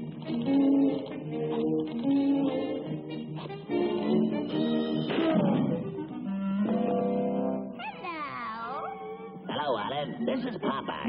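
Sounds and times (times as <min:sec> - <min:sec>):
cartoon orchestral music: 0:00.3 - 0:11.0.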